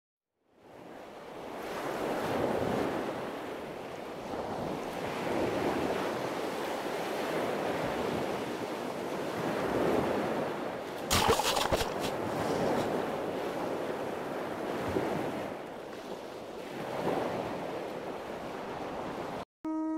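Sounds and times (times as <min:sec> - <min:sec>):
ocean waves breaking: 0:00.8 - 0:19.4.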